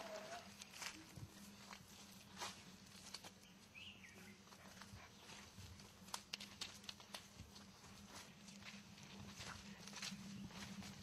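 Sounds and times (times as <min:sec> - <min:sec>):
footsteps on dirt path: 0:00.0 - 0:11.0.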